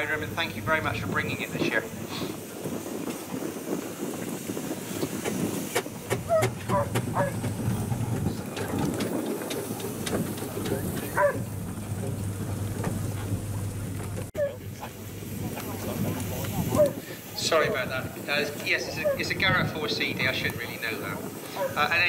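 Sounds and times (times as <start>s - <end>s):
steam engines rumbling: 0.0s - 22.0s
background voices: 6.2s - 22.0s.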